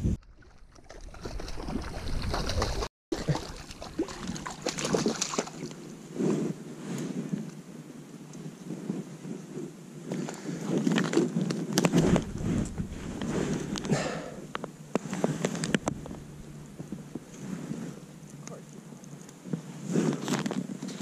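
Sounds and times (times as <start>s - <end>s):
wind buffeting microphone: 11.6s - 18.5s.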